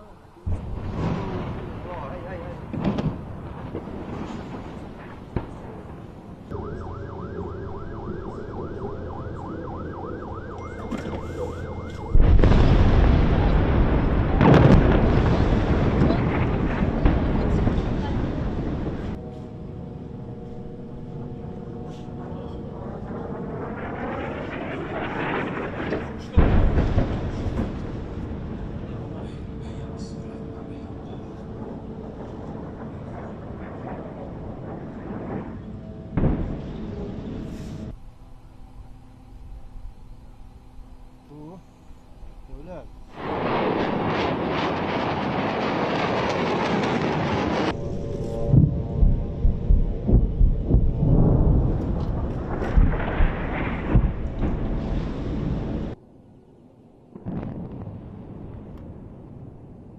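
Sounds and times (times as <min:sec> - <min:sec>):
deep explosion booms: 0:00.5 - 0:09.8, 0:10.4 - 0:19.2, 0:22.7 - 0:30.0, 0:31.2 - 0:37.9, 0:43.1 - 0:56.0, 0:57.1 - 0:59.9
jet aircraft roaring overhead: 0:00.8 - 0:38.0, 0:42.3 - 0:56.0.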